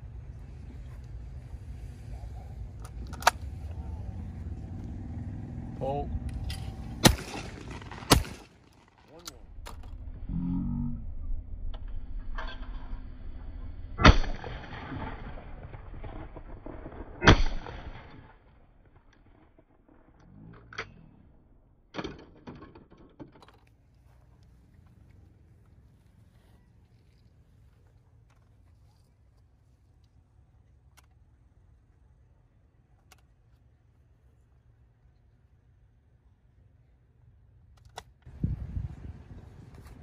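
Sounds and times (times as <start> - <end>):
shotgun shots: 6.4 - 8.8, 17.0 - 18.1.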